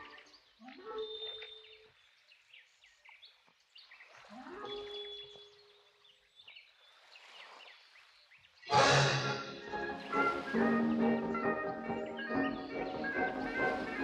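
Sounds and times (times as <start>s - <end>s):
orchestral cartoon music: 8.7s - 14.0s.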